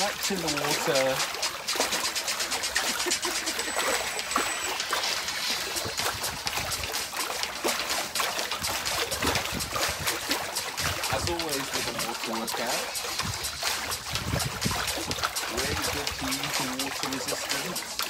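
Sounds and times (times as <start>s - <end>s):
water splashing in paddling pool: 0.0s - 18.0s.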